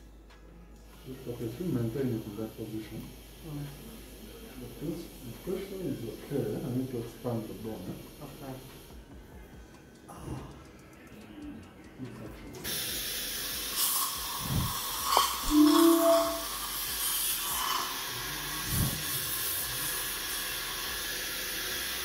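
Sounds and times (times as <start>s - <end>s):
dental suction hissing: 12.6s - 22.0s.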